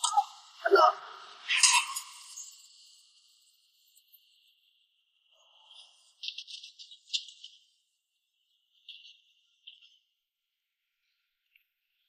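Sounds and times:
insects chirping trill: 0:01.3 - 0:07.7.

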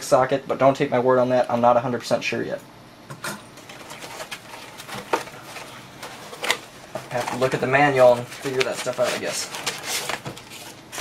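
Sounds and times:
cardboard rustling and knocks: 0:08.2 - 0:11.0.

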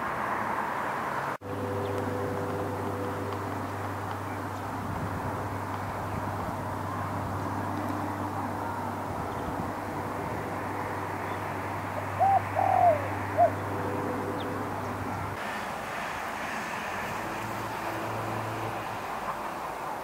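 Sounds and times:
low outdoor background noise: 0:00.0 - 0:20.0
bird calls: 0:11.2 - 0:15.0.

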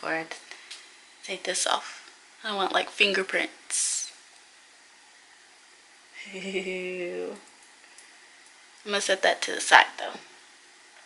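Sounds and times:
woman laughing: 0:06.2 - 0:07.0.

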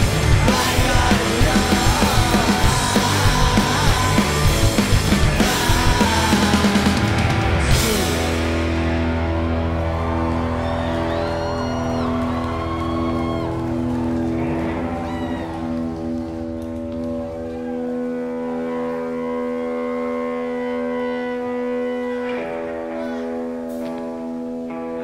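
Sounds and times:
sustained electric guitar chords: 0:00.0 - 0:25.0.

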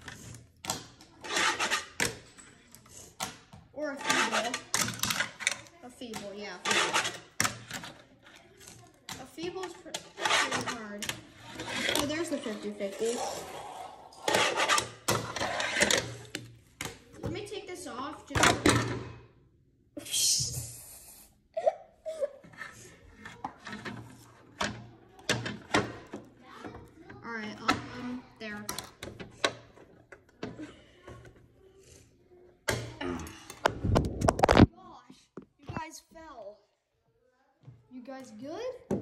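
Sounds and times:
plastic parts clattering on wood: 0:00.0 - 0:13.0, 0:23.2 - 0:31.4
phone being handled: 0:33.6 - 0:34.7.

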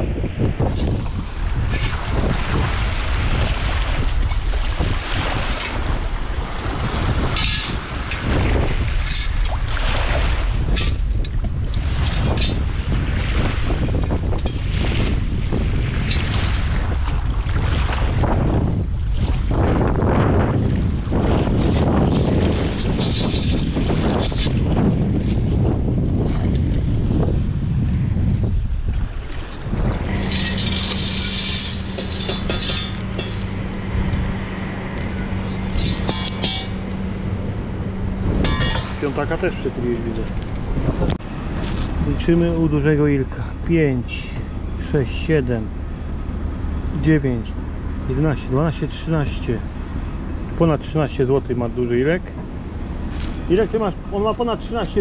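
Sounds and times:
steady low hum: 0:00.0 - 0:55.0
wind buffeting microphone: 0:00.0 - 0:55.0
water sloshing in shallows: 0:00.5 - 0:48.8
sieve scoop in sand: 0:30.1 - 0:33.6.

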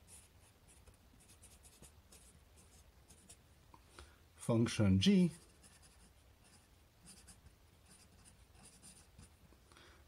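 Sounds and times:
marker scratching on paper: 0:00.0 - 0:03.4, 0:05.3 - 0:09.4.

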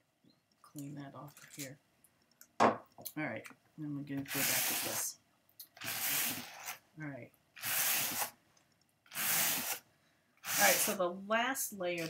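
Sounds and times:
brush strokes on carding cloth: 0:04.3 - 0:05.1, 0:10.4 - 0:11.0.

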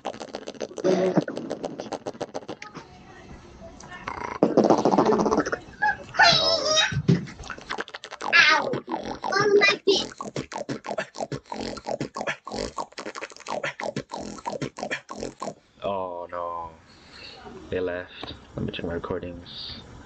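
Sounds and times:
beatboxing percussive mouth hits: 0:00.0 - 0:02.8, 0:04.1 - 0:05.6, 0:07.1 - 0:15.6
sliding vocal sounds: 0:00.0 - 0:02.8, 0:04.0 - 0:15.6.

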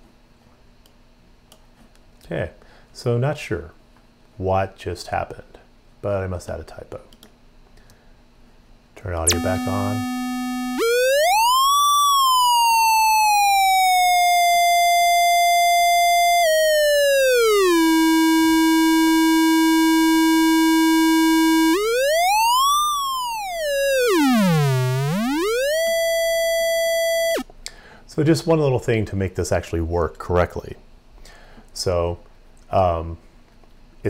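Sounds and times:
gliding synthesizer tone: 0:09.3 - 0:27.4.

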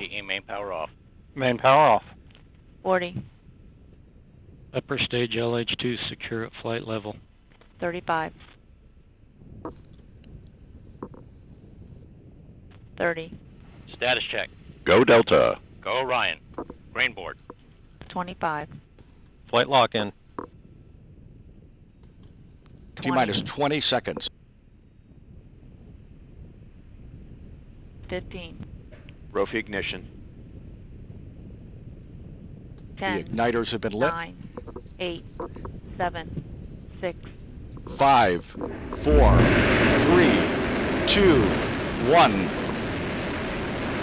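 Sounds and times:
low background rumble: 0:00.0 - 0:44.0
low rumbling: 0:34.2 - 0:44.0.

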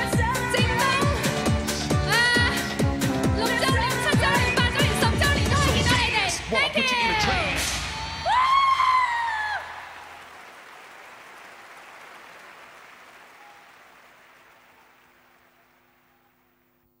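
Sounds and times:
crowd applauding and cheering: 0:07.7 - 0:16.7.

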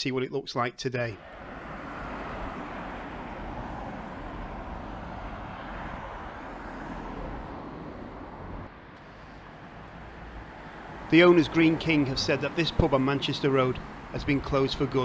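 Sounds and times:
cars driving past: 0:01.1 - 0:15.0.

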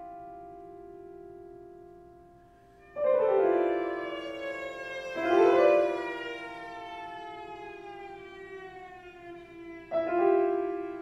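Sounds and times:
piano: 0:00.0 - 0:11.0
cello: 0:02.9 - 0:11.0.

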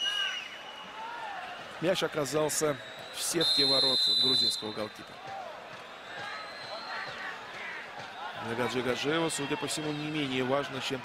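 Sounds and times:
faint crowd shouts: 0:00.0 - 0:11.0
hum of crowd voices: 0:00.0 - 0:11.0.

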